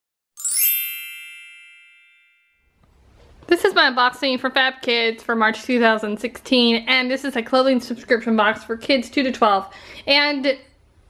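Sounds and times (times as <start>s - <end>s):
bell-like chime: 0.4s - 2.8s.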